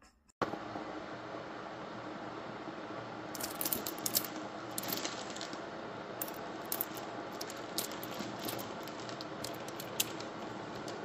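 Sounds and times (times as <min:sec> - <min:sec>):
bag of dried pasta rattling: 0:03.4 - 0:05.6, 0:06.2 - 0:11.0
plastic packets crinkling: 0:03.4 - 0:05.6, 0:06.2 - 0:11.0.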